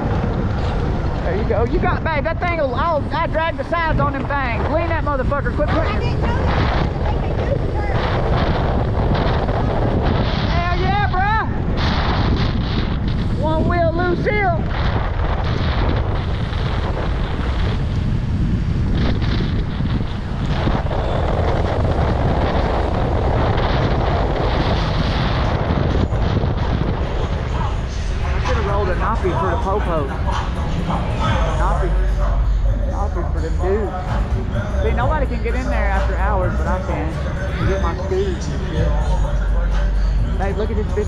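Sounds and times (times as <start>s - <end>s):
loud wind rush on microphone: 0.0s - 41.0s.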